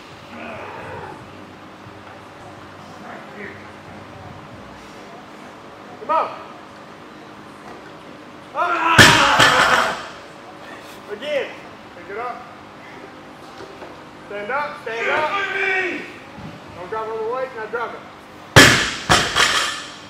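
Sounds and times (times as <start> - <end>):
loud slam: 9.0 - 10.0, 18.6 - 19.8.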